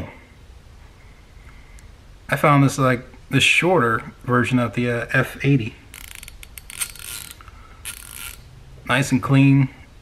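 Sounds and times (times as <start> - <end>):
hand ratchet clicking: 5.9 - 8.5.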